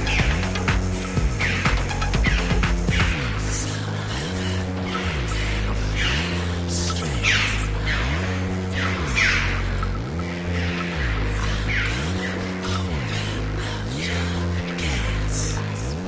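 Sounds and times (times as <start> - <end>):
synth bass line: 0.0 - 16.0.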